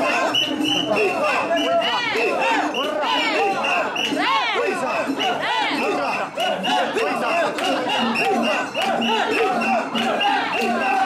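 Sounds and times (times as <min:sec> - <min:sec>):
crowd shouting rhythmic chant: 0:00.0 - 0:11.0.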